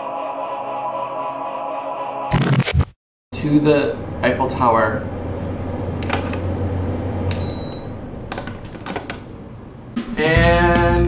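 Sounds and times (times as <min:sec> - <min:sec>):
steady low hum: 0:03.4 - 0:08.4.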